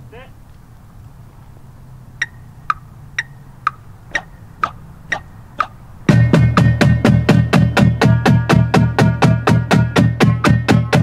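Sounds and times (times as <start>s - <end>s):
drumstick count-off clicks: 2.2s - 5.8s.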